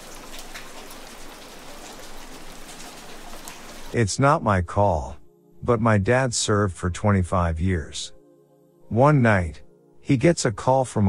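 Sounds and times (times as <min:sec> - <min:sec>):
raindrop ticks: 0:00.0 - 0:04.0
steady rain hiss: 0:00.0 - 0:04.4.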